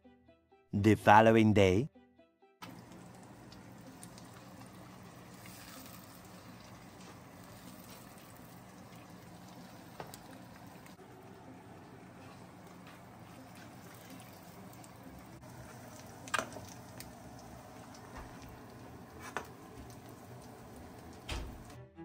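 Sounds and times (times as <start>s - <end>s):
eggs sizzling in frying pan: 2.6s - 21.8s.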